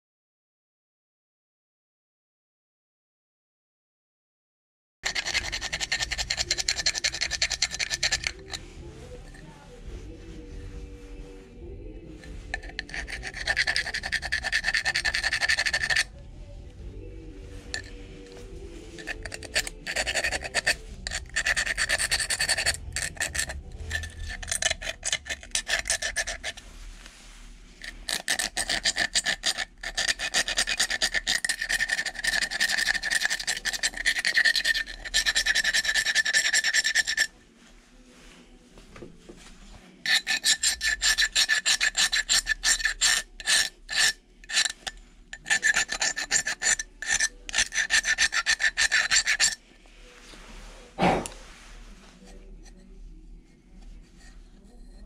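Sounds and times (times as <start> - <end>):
knife blade scraping ceramic: 5.0 - 9.5, 12.2 - 16.1, 17.6 - 26.6, 27.8 - 37.4, 40.0 - 49.6, 53.7 - 55.0.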